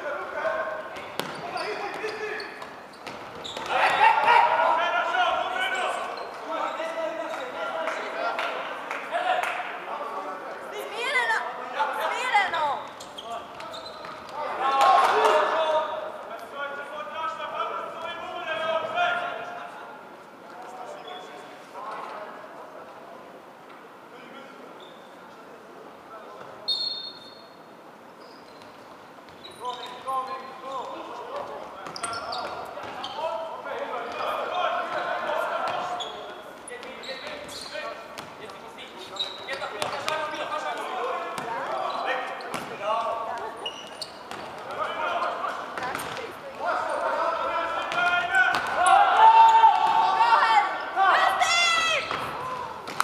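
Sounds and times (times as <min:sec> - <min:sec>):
voices shouting and talking: 0:00.0 - 0:22.4, 0:29.4 - 0:53.0.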